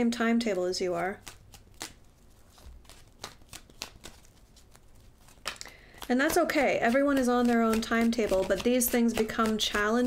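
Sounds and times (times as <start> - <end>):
cards being shuffled: 0.9 - 10.0.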